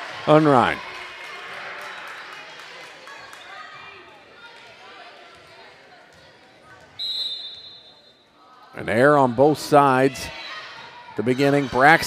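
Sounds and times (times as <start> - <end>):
crowd chatter and cheering: 0.0 - 12.0
referee's whistle: 7.0 - 8.3.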